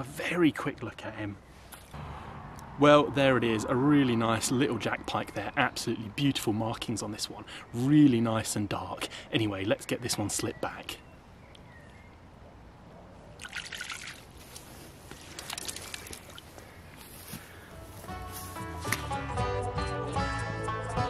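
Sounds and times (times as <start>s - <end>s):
water splashing and dripping: 13.4s - 14.4s, 15.1s - 16.6s
background music: 17.8s - 21.0s.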